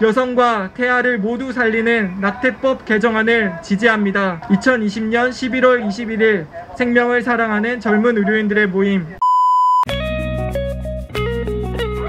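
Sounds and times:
electronic beep: 9.2 - 9.9
plucked guitar tune with bass: 9.9 - 12.0.

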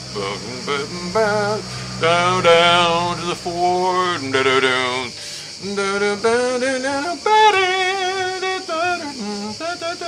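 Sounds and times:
man singing wordless notes: 0.0 - 10.0.

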